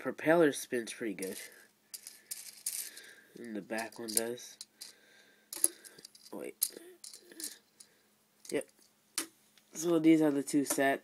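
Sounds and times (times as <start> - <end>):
person speaking: 0.0 - 4.7, 5.6 - 7.6, 8.5 - 8.8, 9.7 - 11.0
plastic pieces clicking: 1.2 - 7.6.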